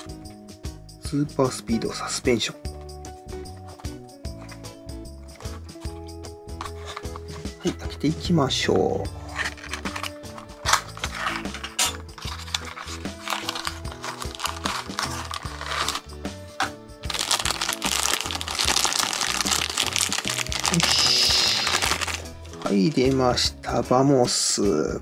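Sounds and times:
background music: 0.0s - 25.0s
plastic bag crinkling: 12.2s - 16.1s, 17.1s - 23.2s.

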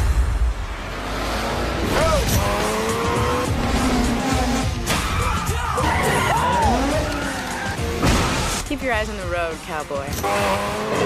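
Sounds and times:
sports car engines revving: 0.1s - 11.0s
music: 2.0s - 11.0s
tyres squealing: 3.8s - 8.5s.

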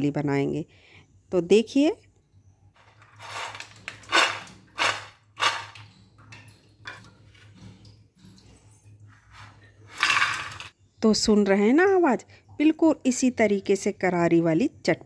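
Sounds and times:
peanuts rattling into dish: 3.0s - 5.8s, 10.0s - 10.7s.

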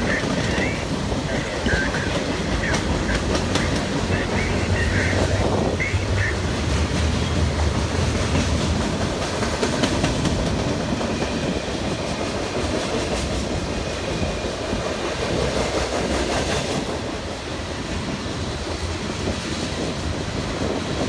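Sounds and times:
freight train rolling by: 0.0s - 21.0s.

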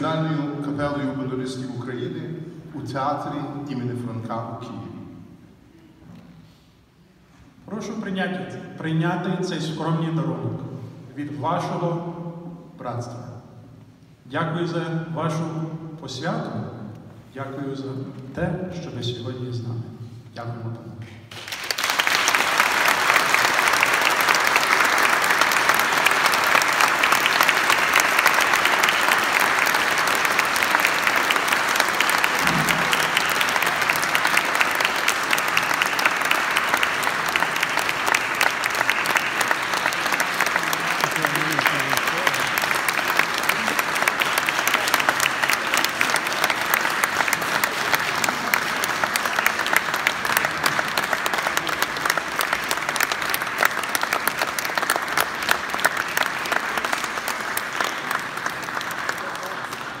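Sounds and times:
audience applauding: 21.3s - 60.0s.

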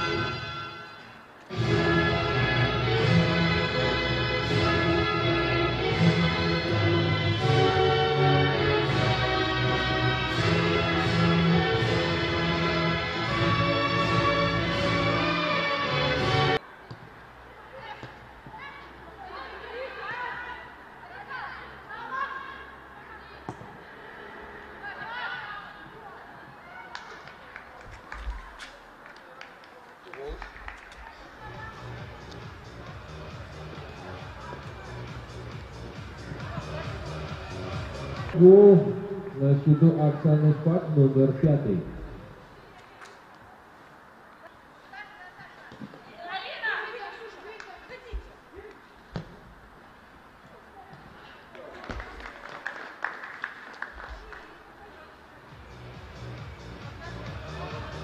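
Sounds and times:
footballers calling out: 31.5s - 42.2s.

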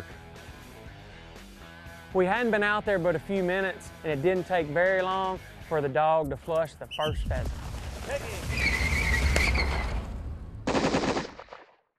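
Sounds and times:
rapid gunfire bursts: 10.7s - 11.7s.

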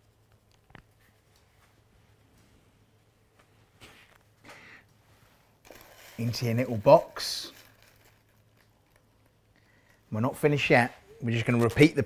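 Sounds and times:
soft paper rustle: 5.0s - 12.0s.

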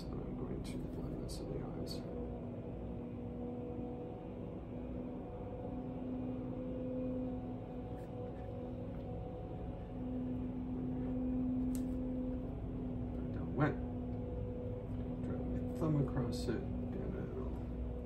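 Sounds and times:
low background rumble: 0.0s - 18.0s
steady low hum: 0.0s - 18.0s.

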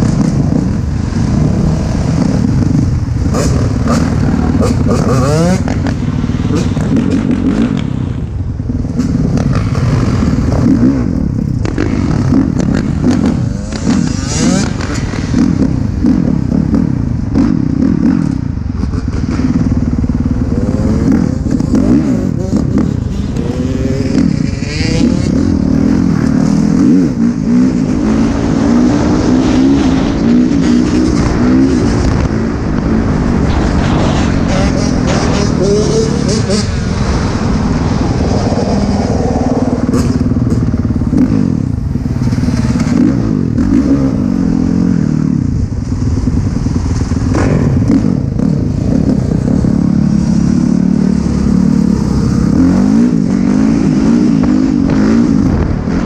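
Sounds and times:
dirt bike engines revving: 0.0s - 56.0s.

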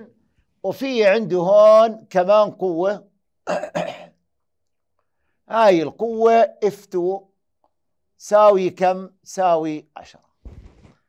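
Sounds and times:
man coughing: 3.5s - 4.2s.

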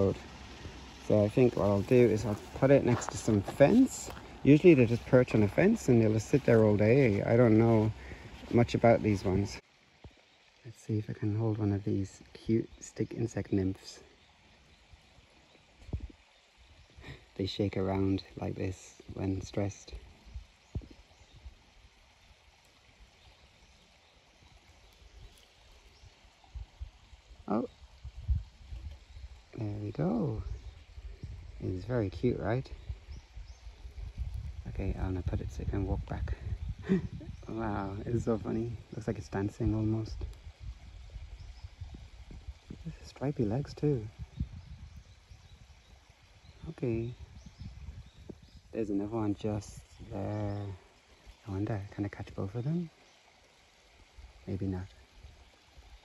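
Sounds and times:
low bumps and rumbles: 27.6s - 45.9s.

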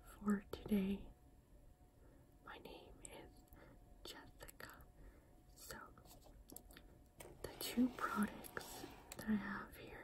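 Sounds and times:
woman whispering: 0.0s - 1.2s, 2.4s - 4.9s, 5.6s - 6.1s, 7.4s - 10.0s.

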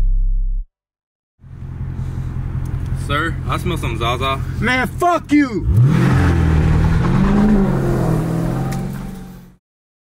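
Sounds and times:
car engine idling: 1.4s - 5.7s.

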